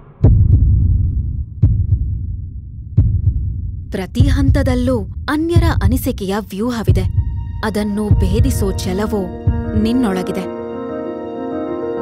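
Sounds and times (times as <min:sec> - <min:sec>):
heartbeat double thumps: 0:00.2 - 0:10.0.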